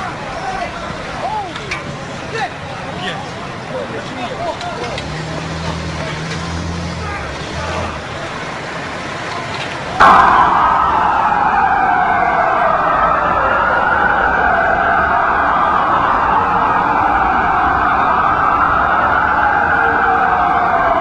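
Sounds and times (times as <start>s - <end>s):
emergency sirens wailing: 0.0s - 21.0s.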